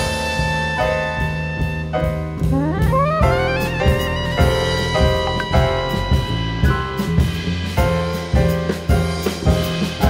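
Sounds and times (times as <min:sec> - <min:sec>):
soprano saxophone: 0:00.0 - 0:07.4
drums and cymbals: 0:00.0 - 0:10.0
piano: 0:00.0 - 0:10.0
upright bass: 0:00.0 - 0:10.0.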